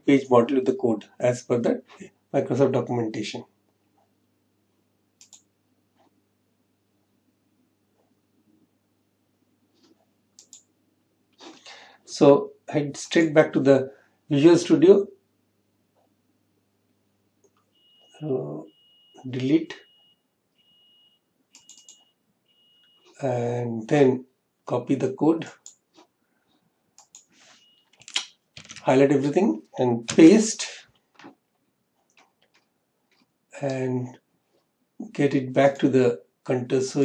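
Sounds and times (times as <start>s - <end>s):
faint short clicks: 27.0s - 27.3s.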